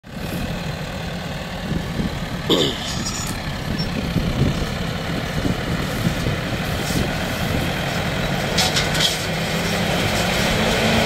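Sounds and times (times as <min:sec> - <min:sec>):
tractor engine running: 0:00.0 - 0:11.0
mill grinding corn stalks: 0:05.4 - 0:11.0.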